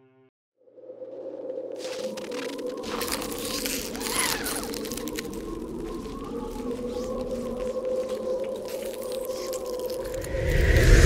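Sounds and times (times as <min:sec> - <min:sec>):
ambient drone: 0:00.7 - 0:11.0
faint crackles: 0:01.4 - 0:11.0
whoosh with deep rumble: 0:10.1 - 0:11.0.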